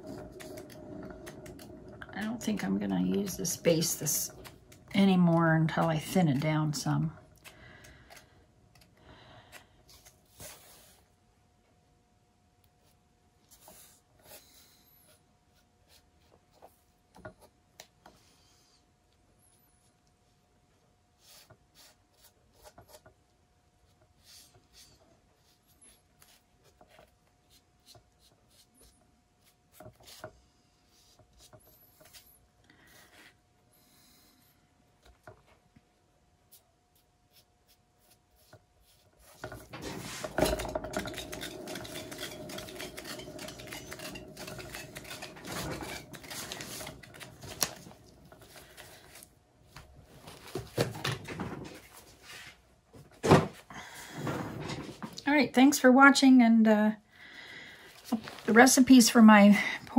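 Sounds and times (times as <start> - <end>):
turntable rubbing and rolling: 0.0 - 5.4, 39.2 - 49.0.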